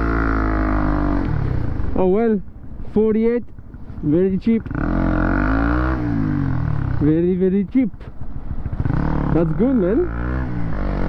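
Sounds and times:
motorcycle engine revving: 0.0s - 11.0s.

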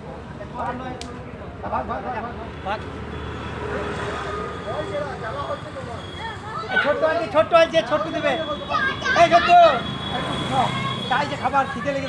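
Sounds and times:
people talking: 4.7s - 12.0s.

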